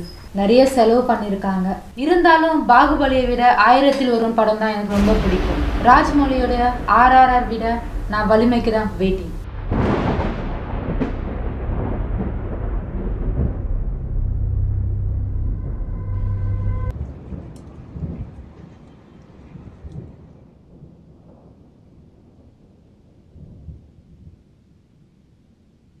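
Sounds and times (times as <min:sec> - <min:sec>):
thunder rumbling: 0:00.0 - 0:24.3
rain: 0:00.0 - 0:26.0
held low tone: 0:01.4 - 0:16.9.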